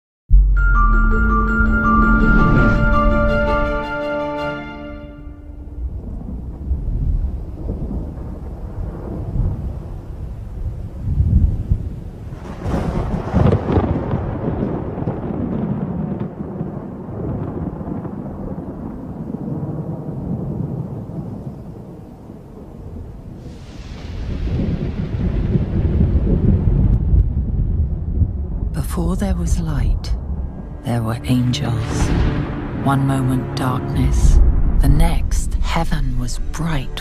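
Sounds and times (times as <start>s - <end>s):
thunder rumbling: 0.3s - 3.9s, 5.1s - 37.0s
sharp thunder crack: 5.2s - 21.9s, 22.6s - 28.8s, 31.6s - 37.0s.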